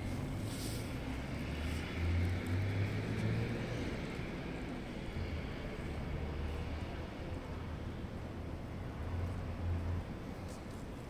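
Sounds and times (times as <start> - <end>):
low city background rumble: 0.0 - 11.0.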